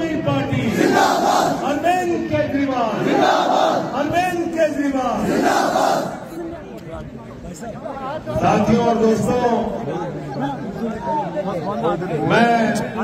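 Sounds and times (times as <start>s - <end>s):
crowd of men chanting: 0.7s - 1.8s, 2.9s - 4.0s, 5.2s - 6.3s.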